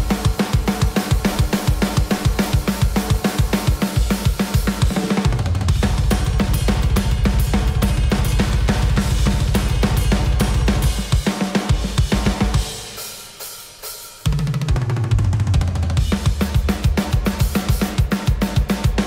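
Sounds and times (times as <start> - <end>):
snare drum: 0.0 - 6.8
fast kick drum: 0.0 - 13.0, 14.3 - 19.0
cymbals: 0.0 - 14.8.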